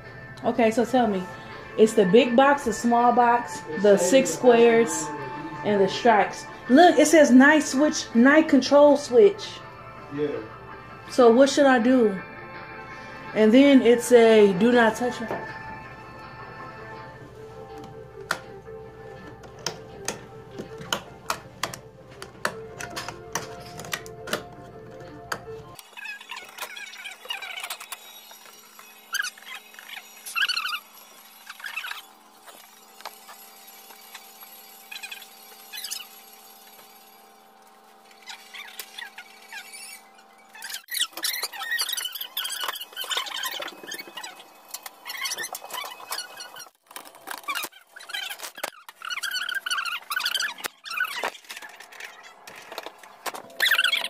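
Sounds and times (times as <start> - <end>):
steady background music: 0.0 - 46.6.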